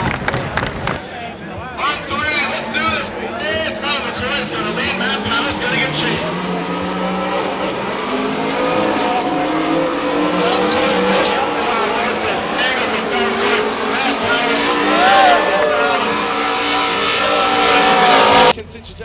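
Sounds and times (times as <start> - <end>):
car engines revving: 0.0 - 19.0
tyres squealing: 1.8 - 18.6.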